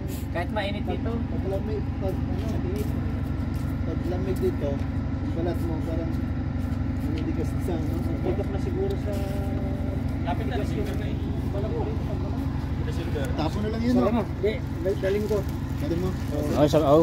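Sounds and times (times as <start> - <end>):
people talking: 0.0 - 6.3, 6.9 - 17.0
steady low rumble: 0.0 - 17.0.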